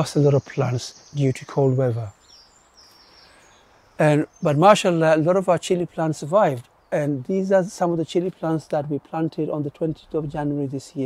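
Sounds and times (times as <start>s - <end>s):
faint high bird calls: 0.0s - 5.0s.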